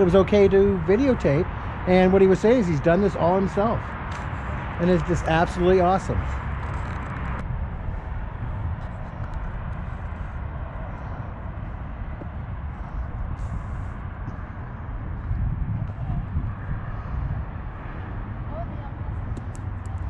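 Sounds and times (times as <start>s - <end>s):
wind rumble on microphone: 0.0s - 20.0s.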